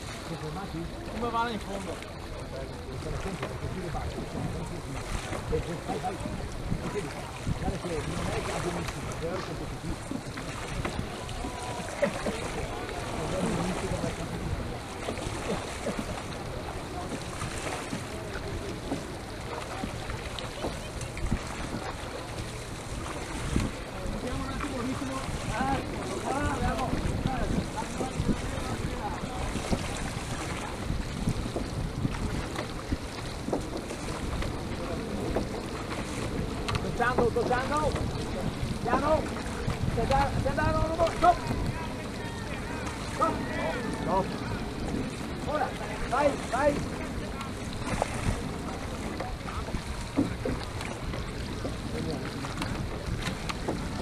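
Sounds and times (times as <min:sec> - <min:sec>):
water noise from rowing boat: 0:00.0 - 0:54.0
wind rumbling on microphone: 0:00.0 - 0:54.0.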